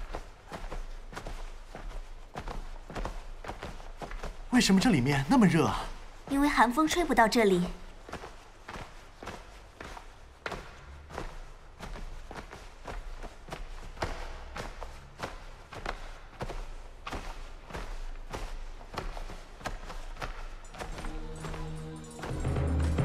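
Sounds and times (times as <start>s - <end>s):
footsteps walking: 0.0s - 23.0s.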